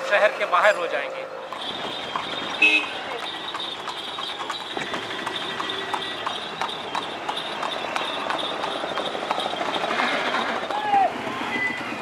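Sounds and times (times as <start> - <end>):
street noise: 0.0 - 12.0
horse hooves clip-clopping: 1.5 - 12.0.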